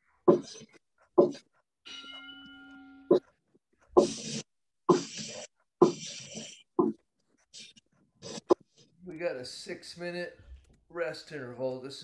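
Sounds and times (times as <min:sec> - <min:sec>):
low ringing tone: 0:01.9 - 0:03.2.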